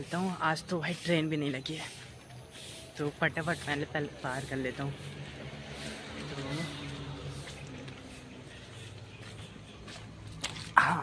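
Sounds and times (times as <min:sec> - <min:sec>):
distant voices: 0:00.0 - 0:11.0
street background hiss and hum: 0:00.0 - 0:11.0.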